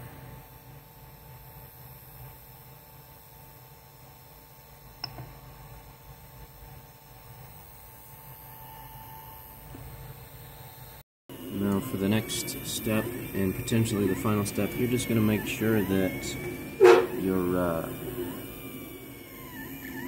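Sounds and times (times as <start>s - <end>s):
cooling fans humming: 9.7s - 20.0s.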